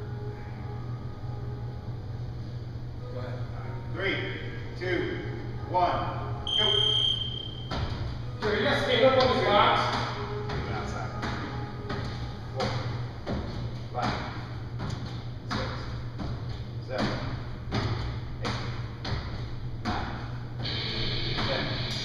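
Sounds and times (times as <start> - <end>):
steady low hum: 0.0 - 22.0
landing thuds on a box: 11.2 - 20.3.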